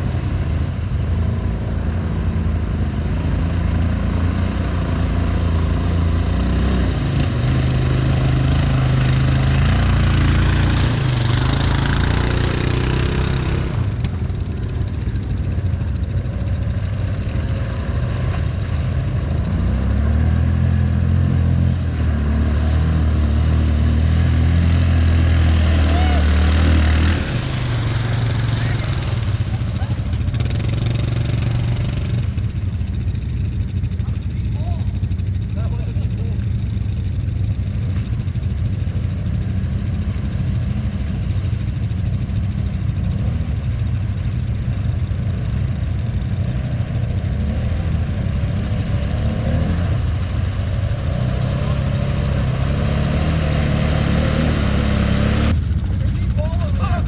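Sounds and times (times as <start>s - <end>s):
atv engines revving: 0.0s - 57.0s.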